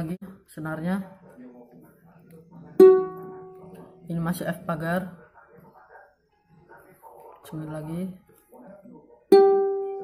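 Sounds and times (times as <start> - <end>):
plucked ukulele string ringing: 2.8 - 3.6, 9.3 - 10.0.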